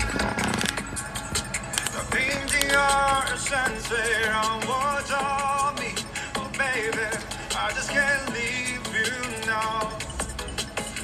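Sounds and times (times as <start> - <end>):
pop music with busy beat: 0.0 - 11.0.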